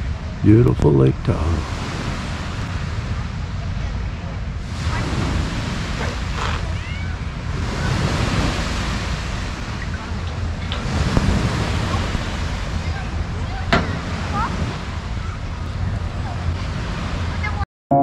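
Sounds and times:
small waves washing onto shore: 0.0 - 17.6
wind rumbling on microphone: 0.0 - 17.6.

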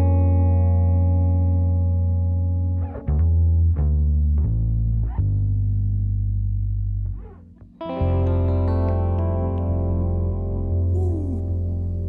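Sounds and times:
electric guitar with effects: 0.0 - 3.1, 7.1 - 12.0
bass guitar notes: 0.0 - 12.0
keyboard chord: 7.9 - 12.0.

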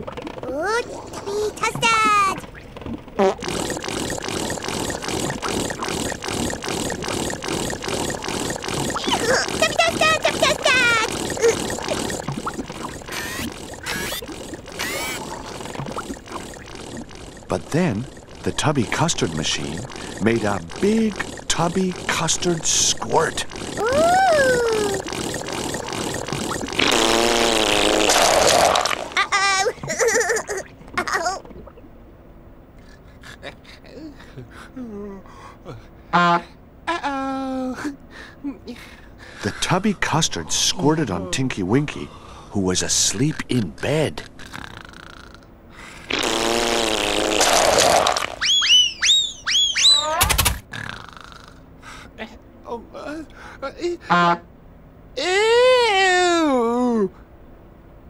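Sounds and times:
squelchy pulsing: 0.0 - 30.6, 47.4 - 50.6
wet buzzing squirt: 0.0 - 30.7, 46.0 - 51.2
high rising and falling ooh: 23.7 - 25.6.

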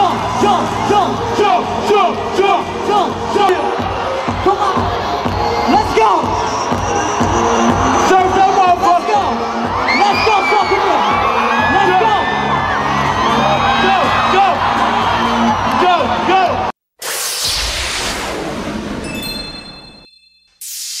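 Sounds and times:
bass-heavy hip-hop track: 0.0 - 16.7
whoosh: 17.0 - 19.4
high steady tones: 17.0 - 21.0.

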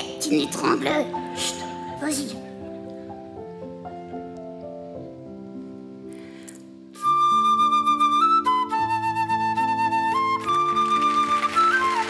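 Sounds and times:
soft sustained accompaniment: 0.0 - 12.0
concert flute melody: 7.0 - 12.0.

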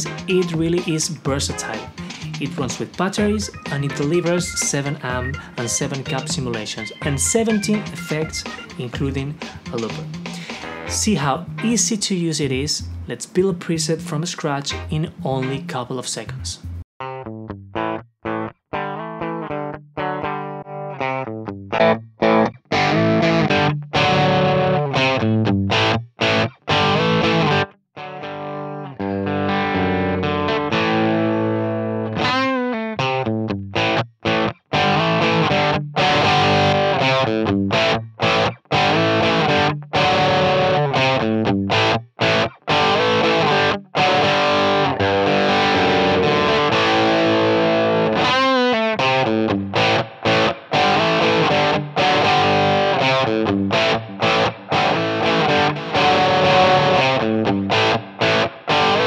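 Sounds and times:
distorted electric guitar: 0.0 - 12.0, 16.6 - 59.0.

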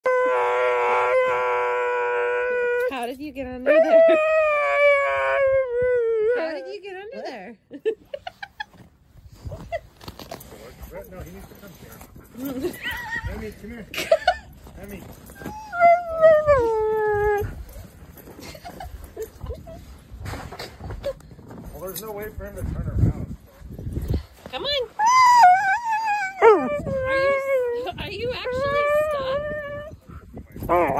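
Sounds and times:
dog howling: 3.7 - 6.7, 15.4 - 17.8, 25.0 - 30.9.

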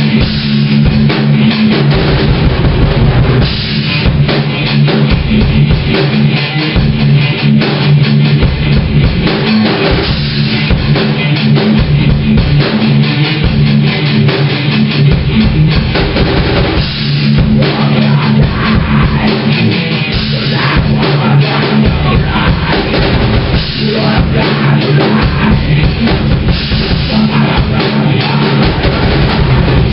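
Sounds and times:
rock band playing loudly: 0.0 - 29.9
bass drum hits: 1.8 - 4.3, 20.6 - 29.9.

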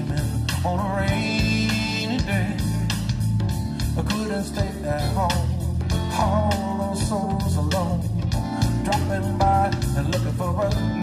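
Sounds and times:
bass guitar: 0.0 - 11.0
drums: 0.0 - 11.0
electric guitar with bent notes: 0.0 - 11.0.

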